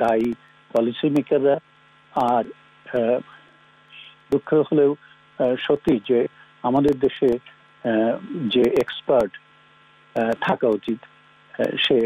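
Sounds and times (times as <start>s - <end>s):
man speaking: 0.0s - 1.6s, 2.2s - 3.4s, 4.0s - 9.4s, 10.2s - 11.0s, 11.6s - 12.0s
low electrical hum: 0.0s - 12.0s.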